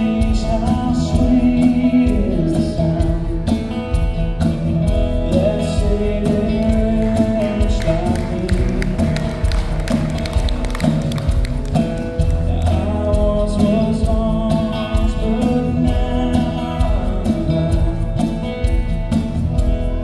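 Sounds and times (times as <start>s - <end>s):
acoustic guitars strumming: 0.0s - 20.0s.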